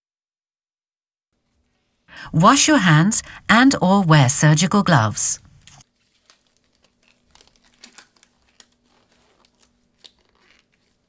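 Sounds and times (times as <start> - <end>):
rubber gloves rustling: 5.6 - 11.0.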